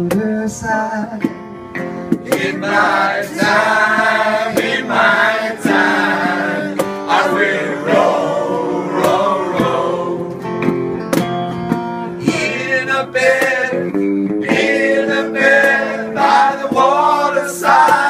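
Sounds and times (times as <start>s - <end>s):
acoustic guitar strumming: 0.0s - 18.0s
two men singing together: 2.3s - 10.4s, 12.2s - 18.0s.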